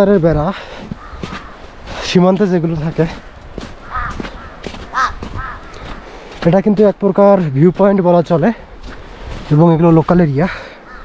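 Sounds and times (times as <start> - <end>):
man's voice: 0.0 - 0.7, 2.0 - 3.2, 6.4 - 8.7, 9.4 - 10.8
crow cawing: 0.6 - 1.7, 3.8 - 6.0, 10.6 - 11.0.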